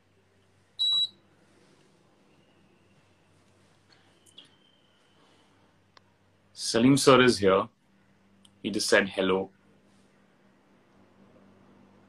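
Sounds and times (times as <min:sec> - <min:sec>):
short electronic beep: 0:00.8 - 0:01.2.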